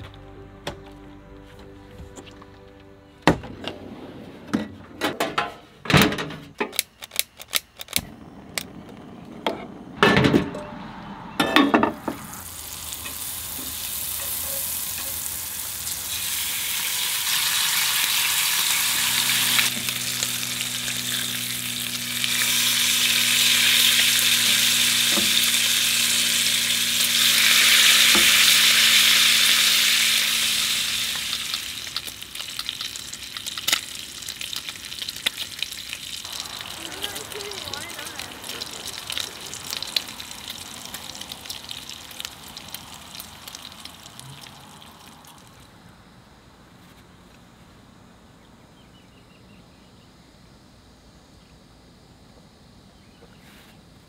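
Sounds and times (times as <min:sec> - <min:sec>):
bacon sizzling in a pan: 0:12.3 - 0:45.1.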